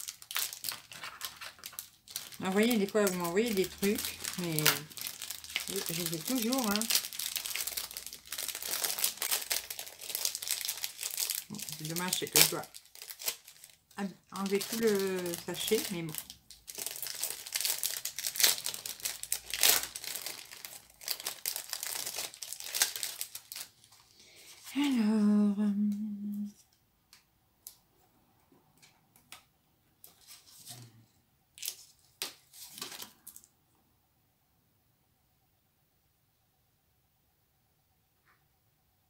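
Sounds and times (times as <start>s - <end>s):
plastic sachet crinkling and tearing: 0.0s - 24.8s, 31.6s - 33.5s
person humming: 24.7s - 26.6s.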